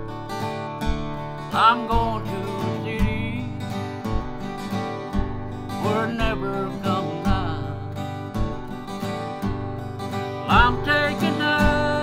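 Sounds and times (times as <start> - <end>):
acoustic guitar strumming: 0.0 - 12.0
man singing: 1.4 - 4.0, 5.7 - 8.3, 10.4 - 12.0.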